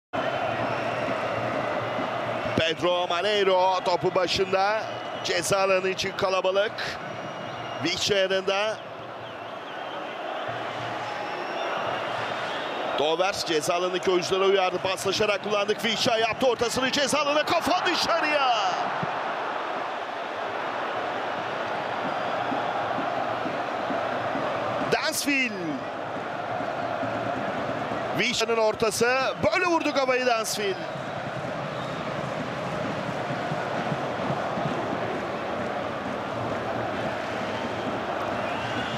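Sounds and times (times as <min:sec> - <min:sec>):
stadium crowd din: 0:00.1 - 0:38.9.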